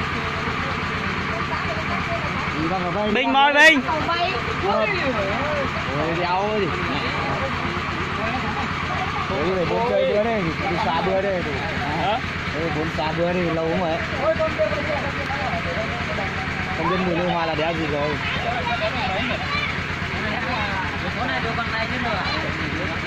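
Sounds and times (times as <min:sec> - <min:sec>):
diesel engine throbbing: 0:00.0 - 0:23.0
people calling: 0:00.0 - 0:23.0.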